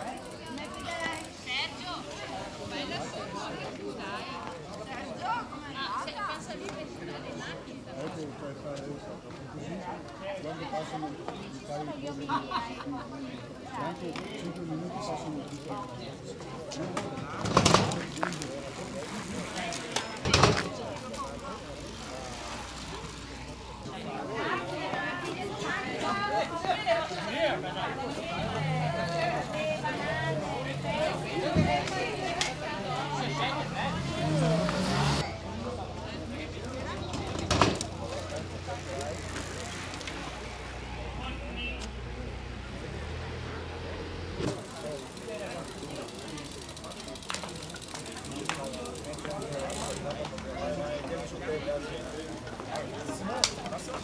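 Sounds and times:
indistinct voices outdoors: 0:00.0 - 0:54.0.

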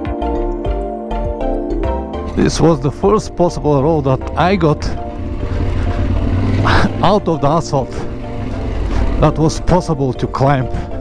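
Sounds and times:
motorcycle engine humming: 0:01.9 - 0:11.0
rush of noise: 0:03.5 - 0:09.8.

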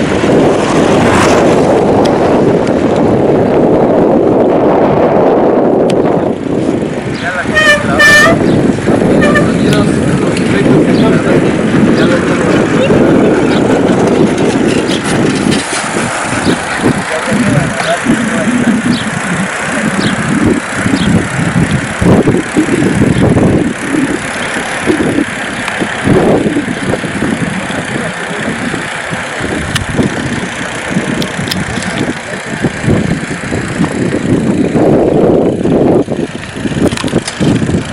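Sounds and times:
wind buffeting microphone: 0:00.0 - 0:37.9
indistinct voices: 0:16.4 - 0:20.8.

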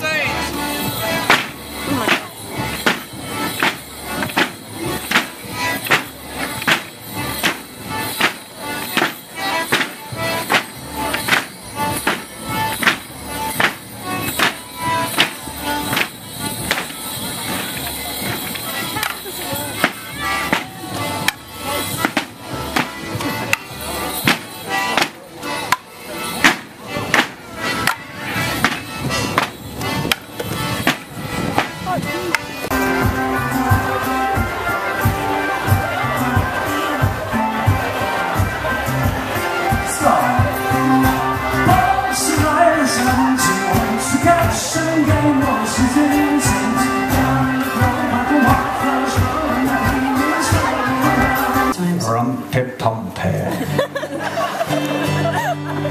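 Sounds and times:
live folk band: 0:00.0 - 0:55.9
wooden sticks clashing: 0:01.3 - 0:13.0, 0:13.6 - 0:23.6, 0:24.2 - 0:28.0, 0:28.6 - 0:32.5.

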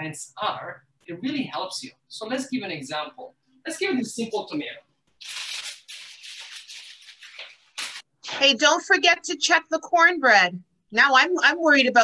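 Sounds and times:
rustling handling noise: 0:05.2 - 0:08.1.

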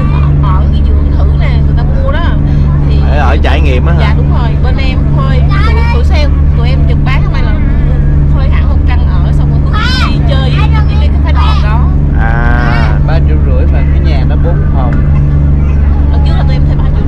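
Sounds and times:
boat engine drone: 0:00.0 - 0:17.0
people conversing: 0:00.0 - 0:17.0.

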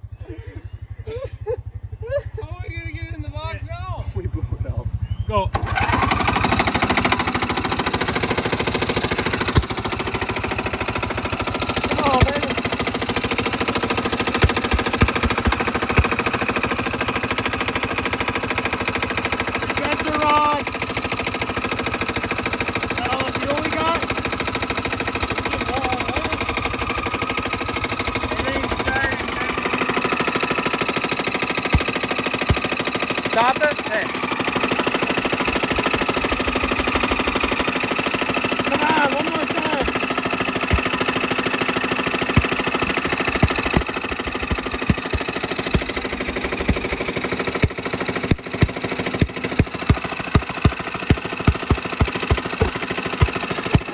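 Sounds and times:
lawn mower engine running: 0:00.0 - 0:53.9
sharp knocks: 0:31.7 - 0:32.8, 0:47.6 - 0:53.9.

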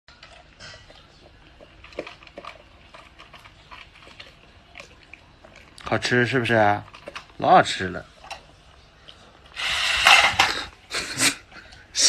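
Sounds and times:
toy food bowl noise bursts: 0:09.6 - 0:10.6.

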